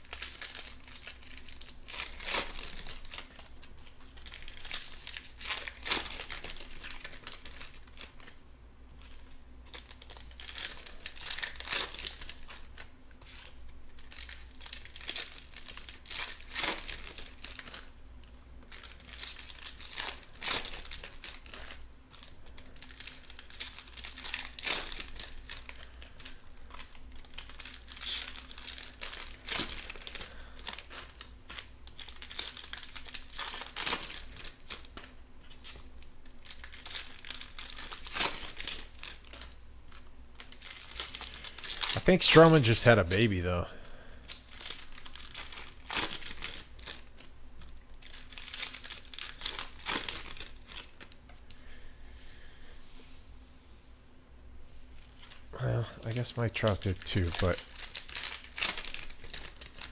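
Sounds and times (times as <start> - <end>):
foil wrappers crinkling and tearing: 0.0 - 8.4, 9.0 - 51.3, 54.9 - 55.5, 56.1 - 59.9
cards being handled: 56.6 - 59.9.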